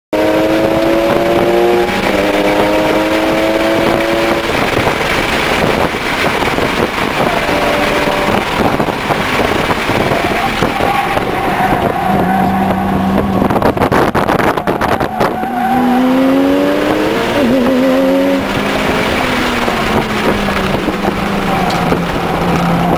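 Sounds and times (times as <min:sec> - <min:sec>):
road and tyre noise: 0:00.1 - 0:22.9
car engine accelerating: 0:00.2 - 0:22.9.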